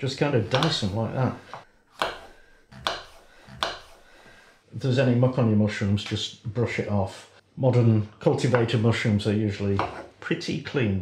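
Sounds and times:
knife chopping on board: 0:00.5 - 0:01.0, 0:01.9 - 0:04.0, 0:09.8 - 0:10.1.

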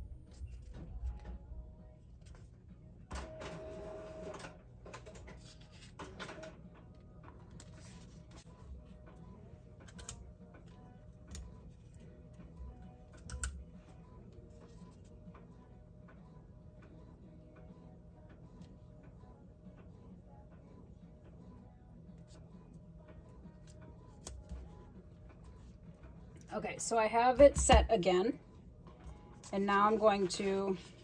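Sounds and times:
low steady hum: 0:00.0 - 0:31.0.

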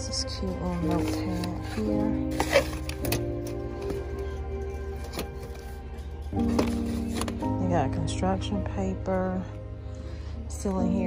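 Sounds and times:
music with sustained chords: 0:00.0 - 0:11.0.

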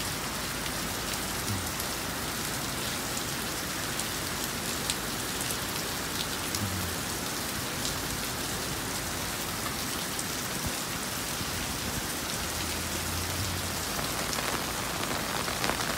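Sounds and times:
heavy rain on pavement: 0:00.0 - 0:15.9.

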